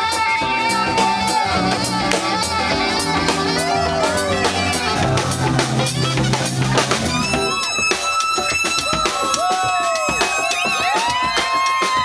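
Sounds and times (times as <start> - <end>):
electric guitar bending notes: 0.0 - 9.3
drum kit beat: 0.0 - 12.0.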